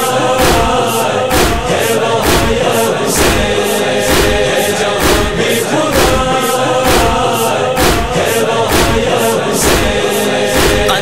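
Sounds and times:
chorus chanting: 0:00.0 - 0:11.0
steady drum beat: 0:00.0 - 0:11.0.

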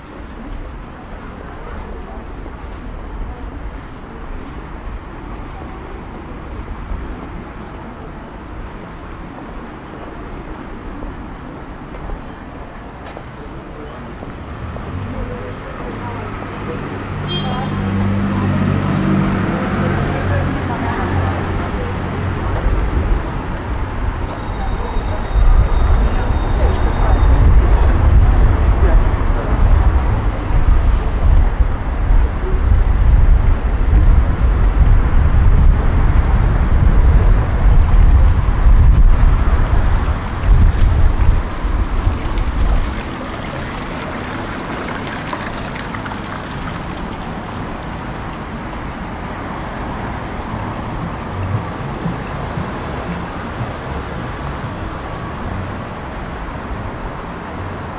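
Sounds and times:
passers-by talking: 0:00.0 - 0:57.9
street ambience: 0:00.0 - 0:57.9
wind buffeting microphone: 0:19.8 - 0:57.9.

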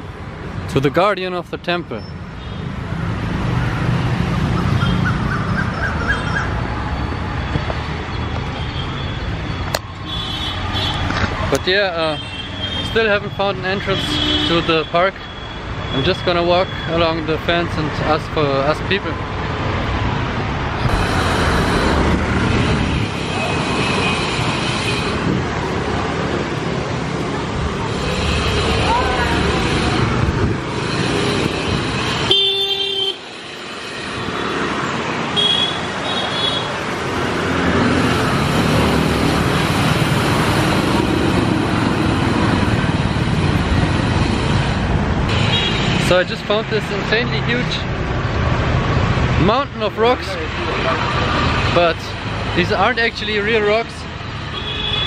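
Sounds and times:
motorbike and car engines passing: 0:02.8 - 0:08.1, 0:19.3 - 0:32.3, 0:33.6 - 0:52.8.

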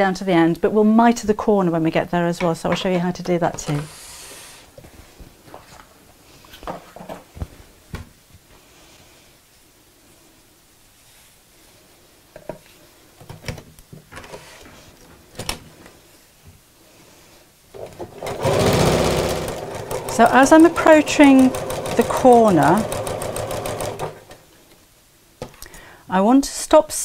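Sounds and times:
sewing machine stitching: 0:17.8 - 0:24.4.

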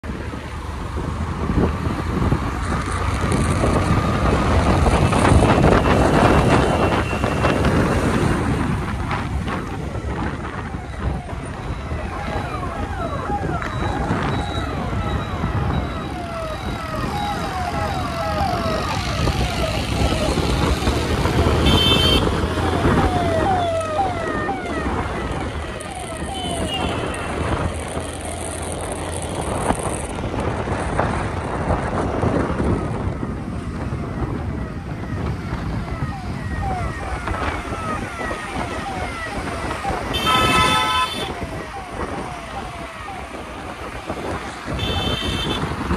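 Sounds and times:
road and wind noise: 0:00.0 - 0:45.9.

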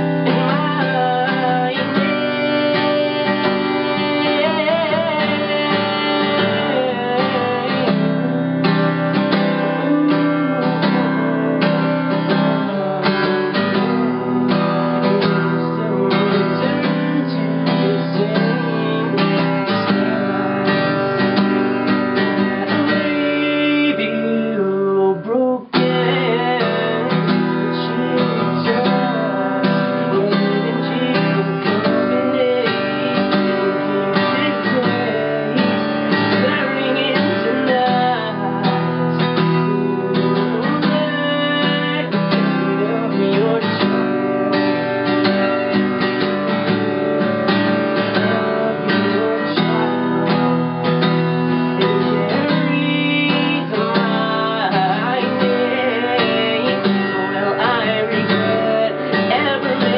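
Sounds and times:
acoustic guitar strumming: 0:00.0 - 0:59.9
man singing: 0:00.0 - 0:59.9.

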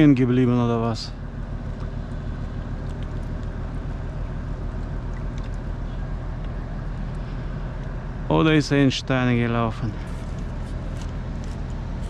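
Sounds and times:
diesel engine drone: 0:00.0 - 0:12.0.

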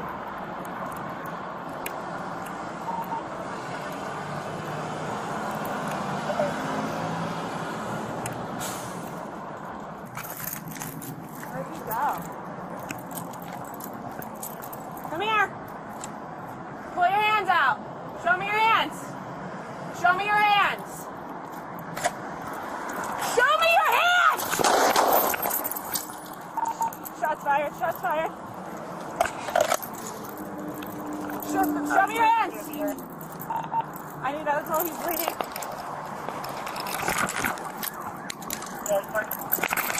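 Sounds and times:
cars going by: 0:00.0 - 0:39.9
road traffic noise: 0:00.0 - 0:39.9.

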